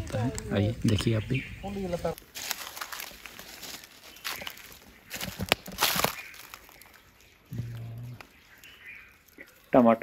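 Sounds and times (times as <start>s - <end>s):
leaf crinkling and rustling: 0.0s - 10.0s
irregular crackles: 2.1s - 10.0s.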